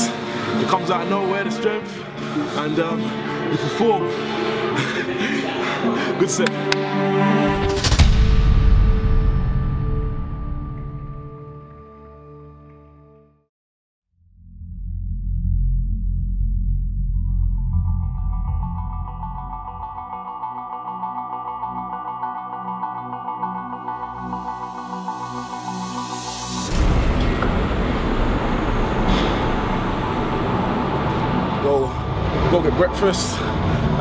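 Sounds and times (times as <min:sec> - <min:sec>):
deep bass drone: 0:14.2 - 0:20.6, 0:23.5 - 0:34.0
low rumbling noise: 0:14.4 - 0:20.0, 0:26.4 - 0:34.0
high sustained notes: 0:17.0 - 0:33.9.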